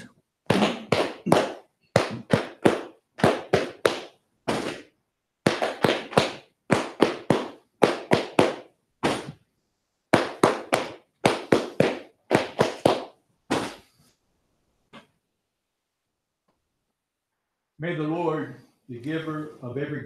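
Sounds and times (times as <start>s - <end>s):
hands clapping in unison: 0.0s - 4.9s, 5.5s - 9.3s, 10.1s - 13.7s.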